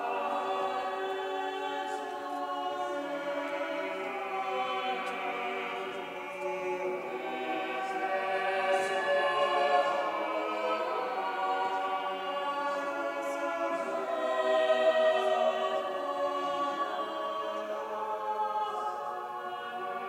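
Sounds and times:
church choir singing: 0.0 - 20.0.

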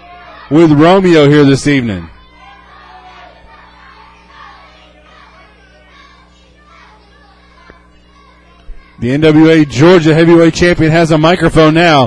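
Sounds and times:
crowd chatter: 0.0 - 11.5
low electrical hum: 0.0 - 12.0.

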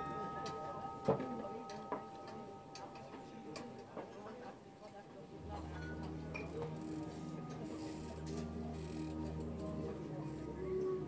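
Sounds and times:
held bell-like tones: 0.0 - 4.3.

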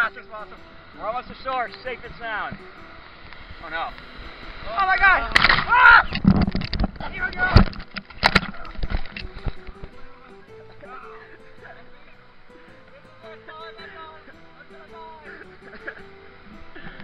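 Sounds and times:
surf splashing on microphone: 0.0 - 10.3
background music with held notes: 0.0 - 17.0.

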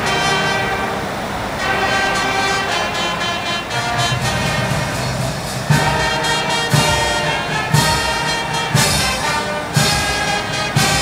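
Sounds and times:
brass band playing: 0.0 - 11.0
low drum strokes: 0.0 - 11.0.

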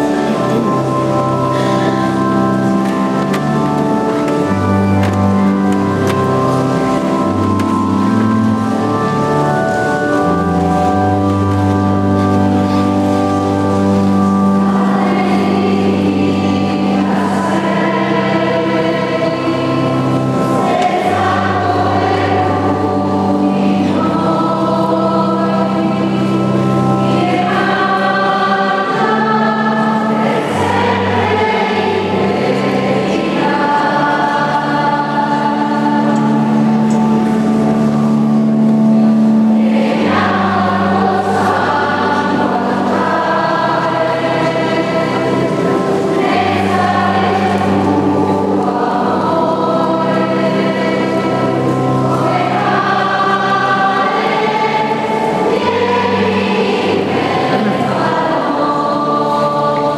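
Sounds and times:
choir singing a hymn: 0.0 - 59.9
sustained low accompaniment: 0.0 - 59.9.

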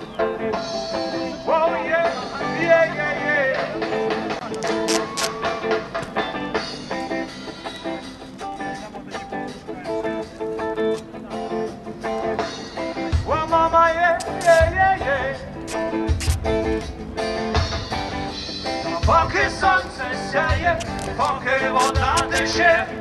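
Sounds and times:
live rock band playing: 0.0 - 22.8
heavy bass and drum beat: 12.1 - 23.0.

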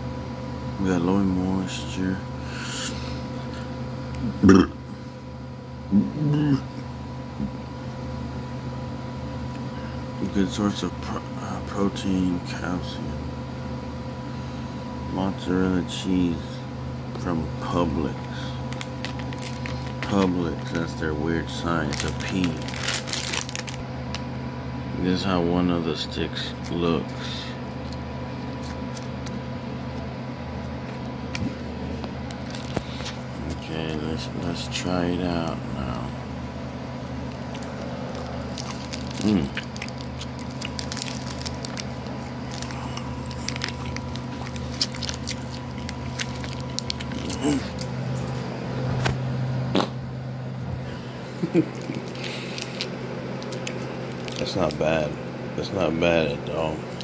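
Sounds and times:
steady low hum: 0.0 - 57.0
plastic packaging crinkling: 18.2 - 21.0, 21.8 - 24.2, 32.2 - 33.2, 37.3 - 48.3, 51.5 - 54.8
person chewing: 27.8 - 29.4, 37.3 - 48.2, 51.4 - 54.7
person humming: 47.2 - 47.8.

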